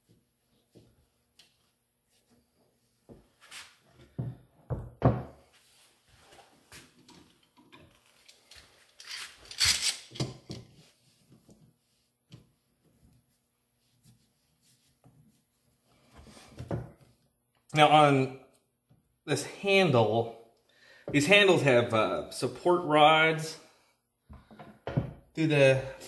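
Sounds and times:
knocks and thuds on workbench: 0:04.1 - 0:05.4, 0:24.3 - 0:25.2.

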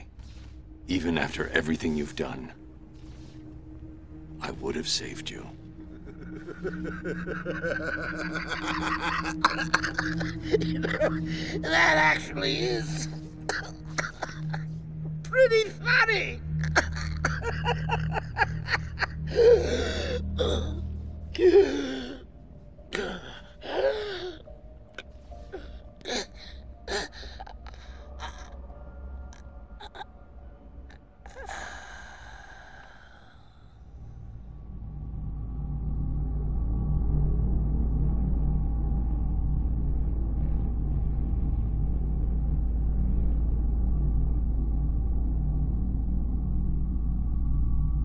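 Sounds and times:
deep rumbling drone: 0:00.0 - 0:15.3, 0:16.3 - 0:48.0
man laughing weakly: 0:05.8 - 0:11.6, 0:16.6 - 0:20.6
wavering groan-like breath: 0:05.8 - 0:12.0, 0:16.6 - 0:22.3, 0:22.9 - 0:24.5, 0:30.9 - 0:34.0.

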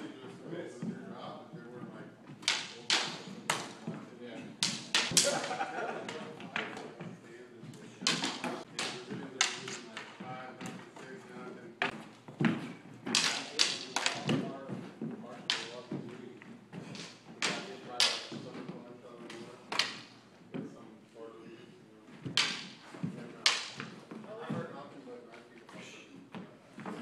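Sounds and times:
swords clashing: 0:02.4 - 0:03.8, 0:04.5 - 0:05.6, 0:08.0 - 0:10.1, 0:13.0 - 0:14.4, 0:16.9 - 0:18.4, 0:23.4 - 0:23.9.

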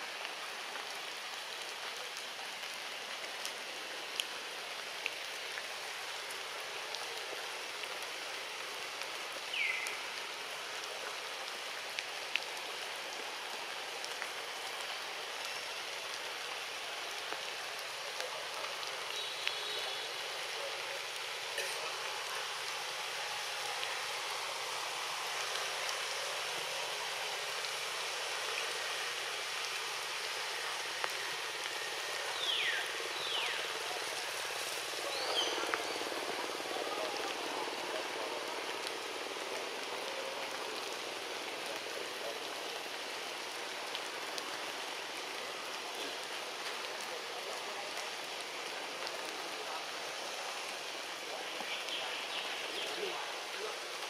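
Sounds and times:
forest background hiss: 0:00.0 - 0:54.0.

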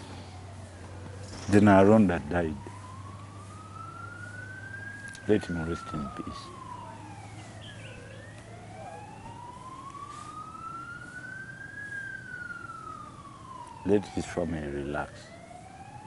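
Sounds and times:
siren wailing: 0:00.0 - 0:16.0.

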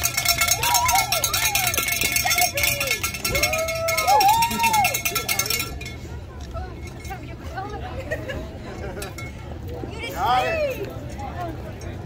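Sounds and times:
bell ringing rapidly: 0:00.0 - 0:06.0
voices calling out: 0:00.0 - 0:11.6.

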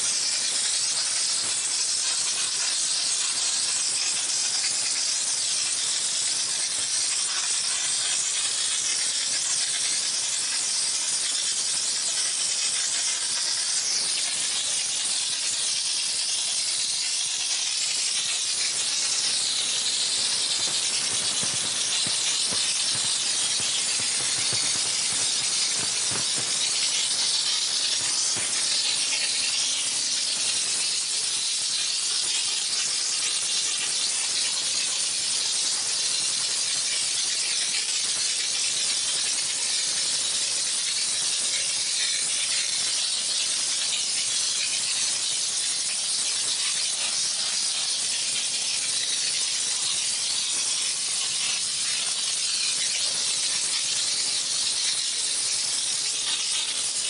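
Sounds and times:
high-pressure steam jet hiss: 0:00.0 - 0:57.0.

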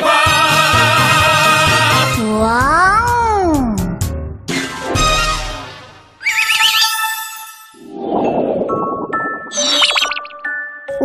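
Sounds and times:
music: 0:00.0 - 0:11.0
warbling sparkling magic chime: 0:09.5 - 0:10.4.

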